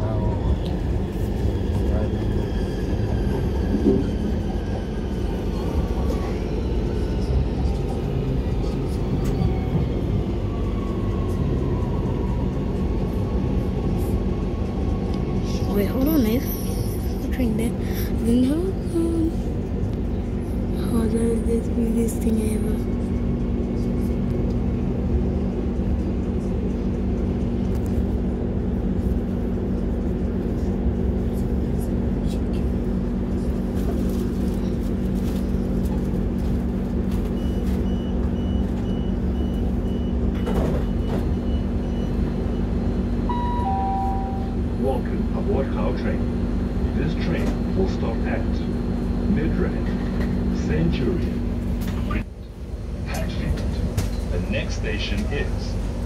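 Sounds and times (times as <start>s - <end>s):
train hum and rumble: 0.0s - 56.0s.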